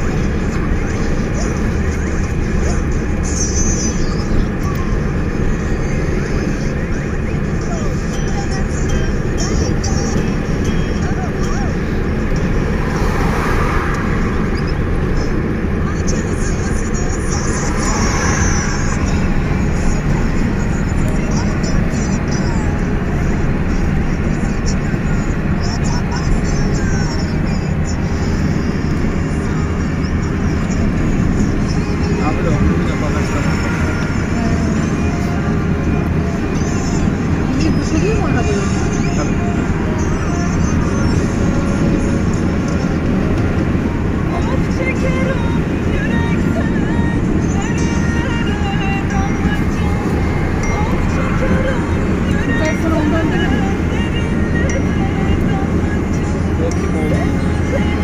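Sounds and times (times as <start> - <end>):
faint voices: 0.0 - 58.0
road and engine noise in car: 0.0 - 58.0.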